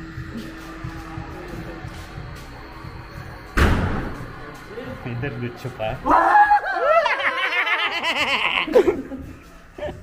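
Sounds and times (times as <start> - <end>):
shrill cackling laugh: 6.3 - 9.2.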